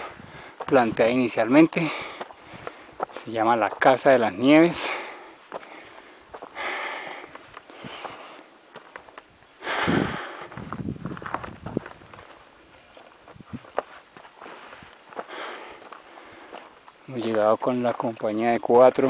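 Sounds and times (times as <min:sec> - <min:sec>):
person breathing hard: 0:00.0 - 0:00.7, 0:01.8 - 0:03.0, 0:04.8 - 0:08.5, 0:09.6 - 0:10.7, 0:14.4 - 0:16.8
footsteps on gravel: 0:00.0 - 0:09.3, 0:10.1 - 0:19.0.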